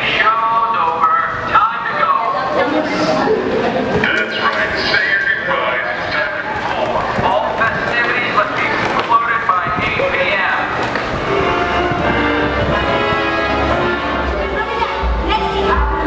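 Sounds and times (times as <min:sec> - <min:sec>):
people talking: 0:00.0 - 0:11.0, 0:12.5 - 0:16.0.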